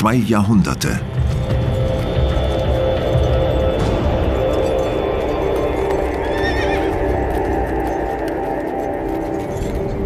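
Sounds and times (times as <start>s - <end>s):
horse whinnying: 6.1s - 7.3s.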